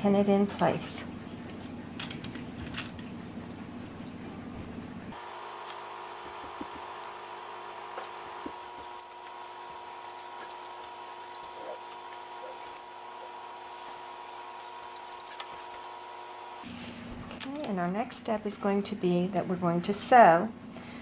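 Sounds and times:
faint steady hum: 0.0s - 21.0s.

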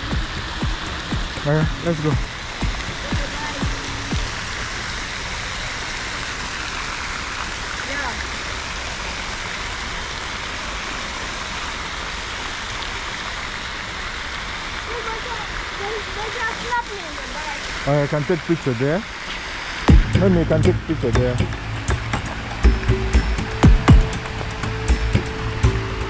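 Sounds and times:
fountain jets splashing into pool: 0.0s - 26.0s.

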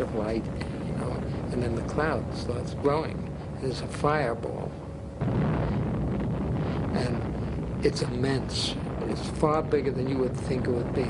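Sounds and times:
deep underwater explosion rumble: 0.0s - 11.0s.

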